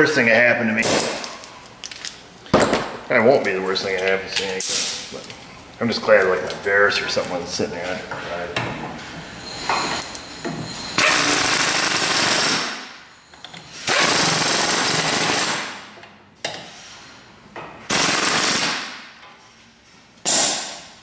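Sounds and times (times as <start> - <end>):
pneumatic hand tool bursts: 11.0 - 12.8, 13.8 - 15.8, 17.9 - 19.0.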